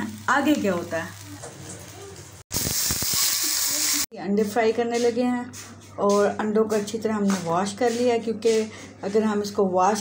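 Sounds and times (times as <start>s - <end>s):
rotis sizzling in oil: 0.0s - 4.1s.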